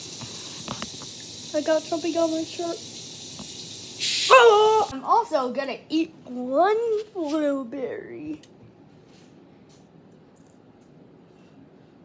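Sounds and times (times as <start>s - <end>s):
child hissing: 4.0s - 5.0s.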